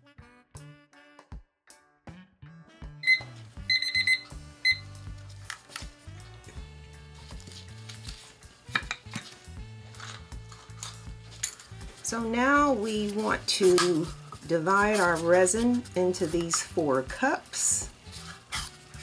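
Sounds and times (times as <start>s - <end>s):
background music: 0.0s - 19.0s
kitchen timer beeping: 3.0s - 4.9s.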